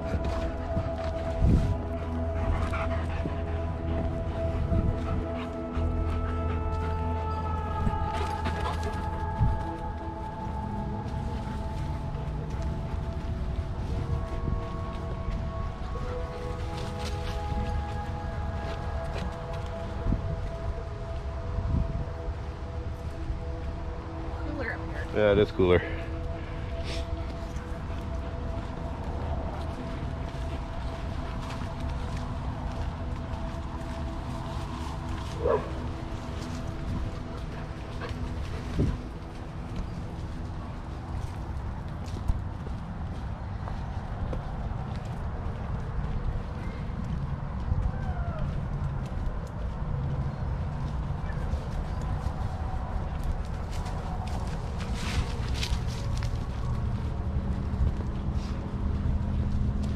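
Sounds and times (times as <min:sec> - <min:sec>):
wind on microphone: 0:00.0 - 0:06.8, 0:09.0 - 0:24.3, 0:26.4 - 0:59.9.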